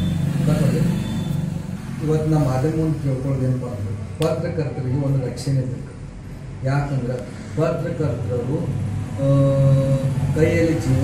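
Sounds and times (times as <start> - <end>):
vehicle engine humming: 0.0 - 4.7
man talking: 2.0 - 6.0, 6.6 - 11.0.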